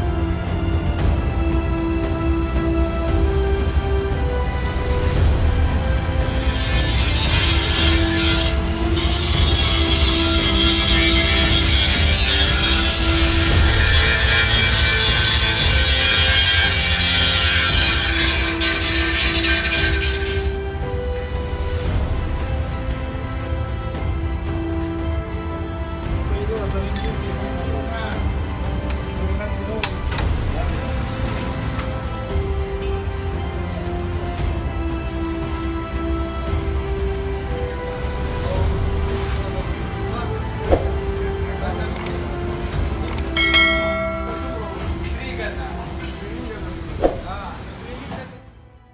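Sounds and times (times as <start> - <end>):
background music with sustained notes: 0.0 - 48.9
angle grinder cutting sheet steel: 6.2 - 20.6, 40.4 - 48.3
notification bell ding: 43.4 - 45.0.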